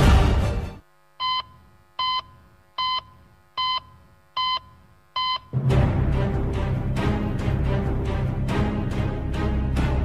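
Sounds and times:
short electronic beeps: 1.2 - 5.6
loud music: 5.6 - 10.0.

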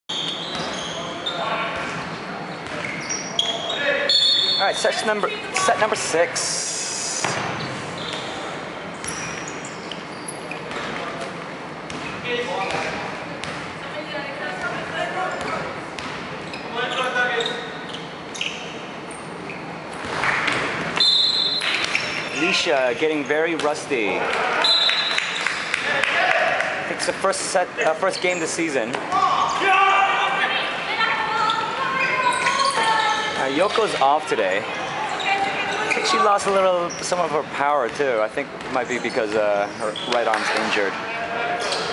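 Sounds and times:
sneaker squeaks on wooden court: 0.1 - 4.8, 7.2 - 11.3, 11.9 - 13.7, 15.2 - 23.6, 31.4 - 34.0, 38.6 - 40.7
players' voices: 0.2 - 8.9, 21.4 - 41.9.

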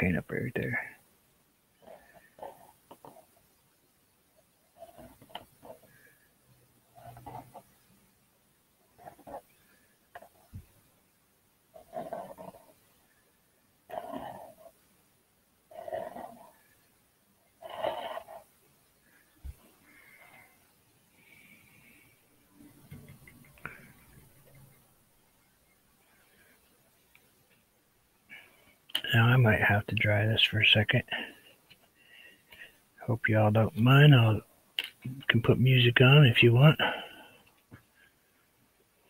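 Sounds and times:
palette knife scraping canvas: 4.8 - 5.9, 11.8 - 12.8, 13.9 - 14.7, 15.7 - 16.6, 17.6 - 18.5.

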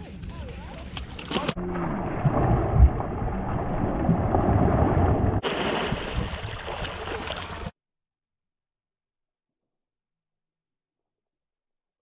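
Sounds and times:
water splashing and sloshing: 1.0 - 7.8.

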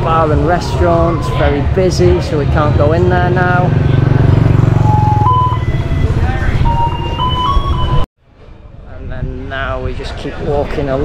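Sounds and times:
street traffic: 0.0 - 11.0
motor scooter engine running: 3.2 - 6.5.

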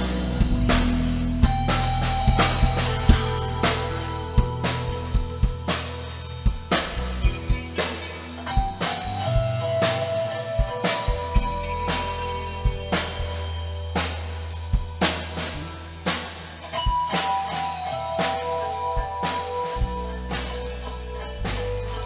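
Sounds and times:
bass line: 0.0 - 22.0
drum kit beating: 0.0 - 22.0.

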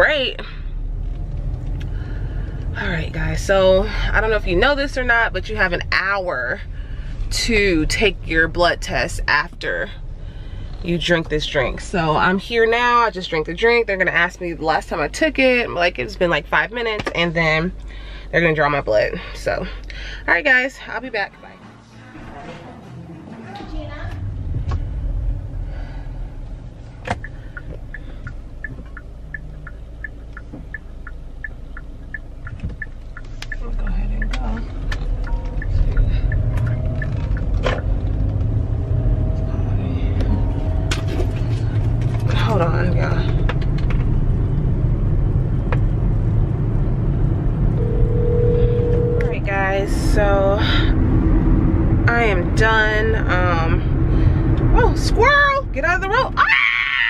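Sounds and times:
car cabin road and engine rumble: 0.0 - 57.0
quick regular ticking: 27.2 - 33.6.

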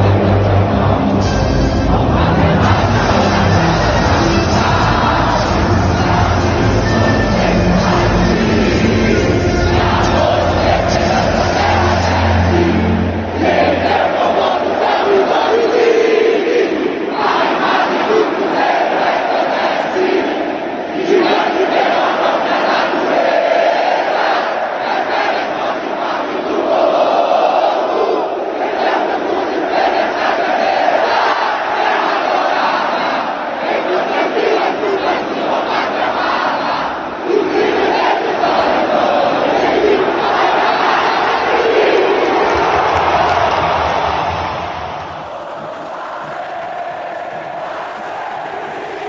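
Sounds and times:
stadium crowd singing in unison: 0.0 - 49.0.

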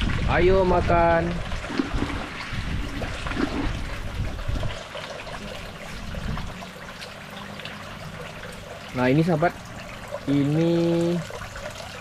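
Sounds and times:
trickle of flowing water: 0.0 - 12.0
fish splashing in water: 1.2 - 12.0.

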